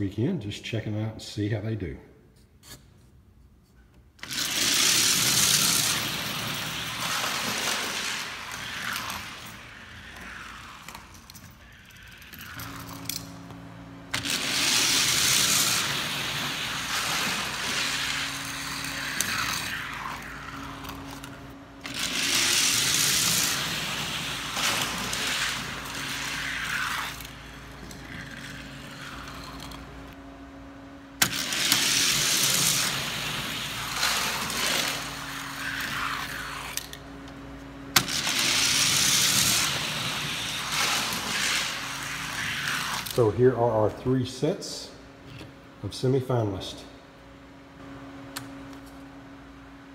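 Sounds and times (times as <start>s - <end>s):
toy cars rolling on plastic track: 4.2s - 13.2s, 14.1s - 29.9s, 31.2s - 37.0s, 38.0s - 43.2s.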